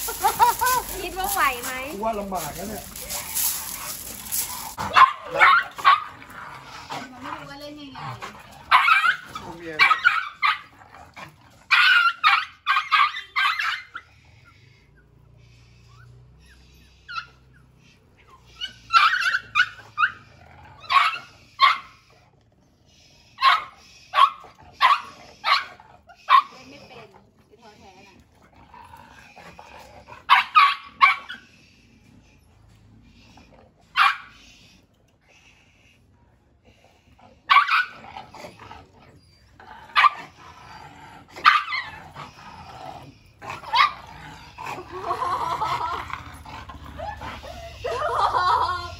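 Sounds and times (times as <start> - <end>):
small dog barking: 4.9 - 6.1, 30.3 - 31.3, 34.0 - 34.3.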